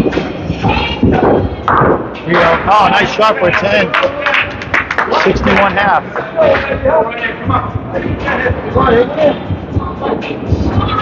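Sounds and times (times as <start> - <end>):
voices in a hall: 0.0 - 11.0
bowling ball thudding and rolling: 1.2 - 3.2.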